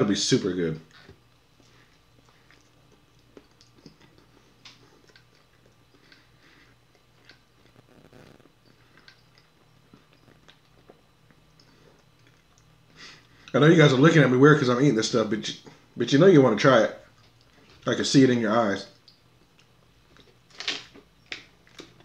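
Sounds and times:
close-up chewing: 0.9s - 13.5s
wet mouth clicks: 2.2s - 6.3s.

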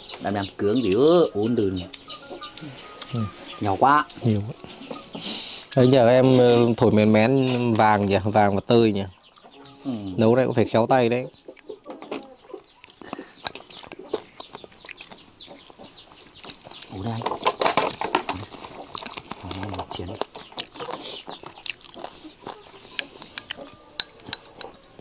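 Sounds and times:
utensils clinking against bowls: 0.8s - 6.8s, 13.1s - 14.0s, 22.9s - 24.9s.

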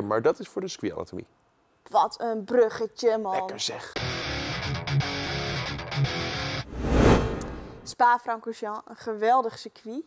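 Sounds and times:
whoosh: 6.6s - 7.9s.

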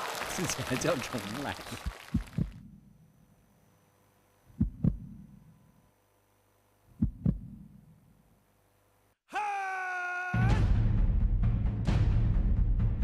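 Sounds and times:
faint steady hum: 0.4s - 9.2s
heartbeat thumps: 2.1s - 2.8s, 4.6s - 5.4s, 6.9s - 7.8s.

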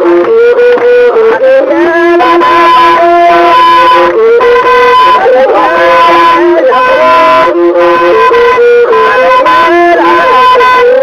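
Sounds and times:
melody of long held notes: 0.0s - 11.0s.

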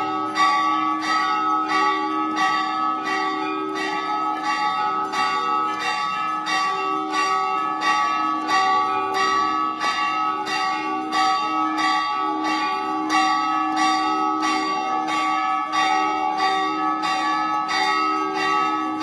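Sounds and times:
temple bells ringing: 0.0s - 19.0s.

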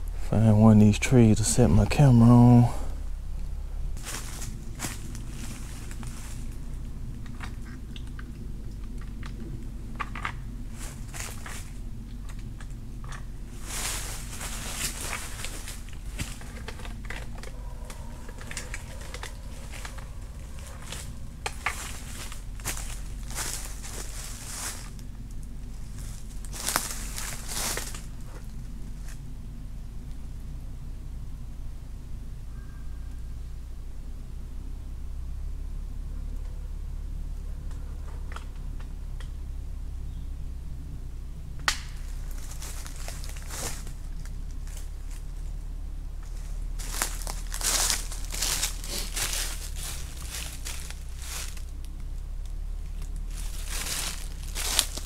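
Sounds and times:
steady low rumble: 0.0s - 55.0s
footsteps crunching dry leaves: 3.9s - 7.0s, 10.5s - 29.2s, 42.0s - 45.6s, 46.2s - 55.0s
rustling and handling noises: 3.9s - 29.2s, 42.0s - 45.5s, 46.2s - 55.0s.

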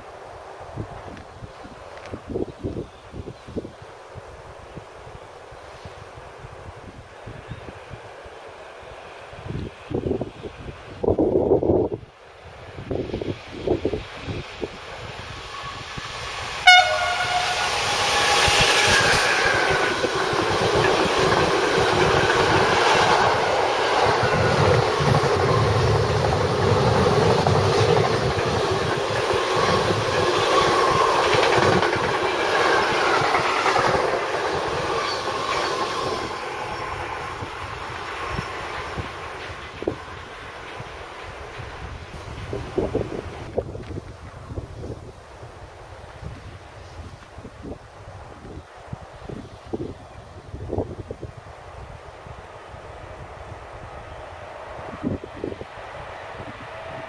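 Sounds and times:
wind gusts on microphone: 0.0s - 57.0s
train horn blast: 16.6s - 19.5s.

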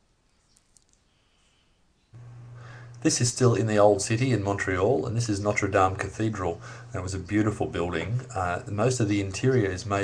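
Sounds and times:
faint clicks: 0.5s - 1.1s.

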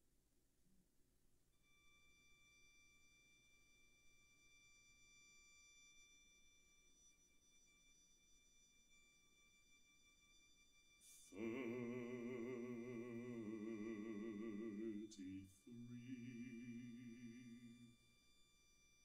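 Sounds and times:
faint high violin note: 1.6s - 19.0s.

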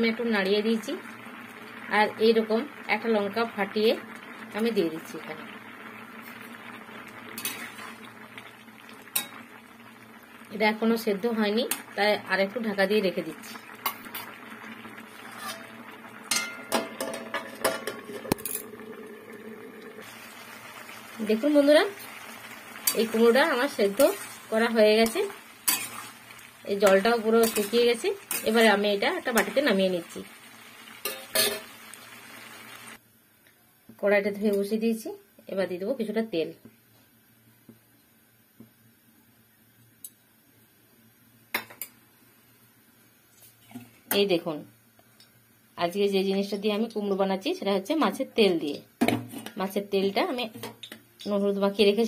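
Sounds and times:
metal lid clinking on a pan: 16.3s - 18.6s.

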